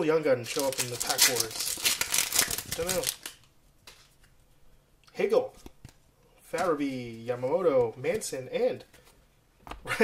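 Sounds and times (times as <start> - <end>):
plastic wrapper crinkling: 0.4 - 4.1
trading cards handling: 0.4 - 4.4.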